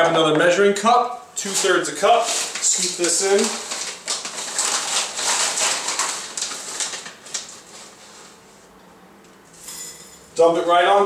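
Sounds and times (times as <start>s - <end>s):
bag crinkling: 1.4s - 8.3s.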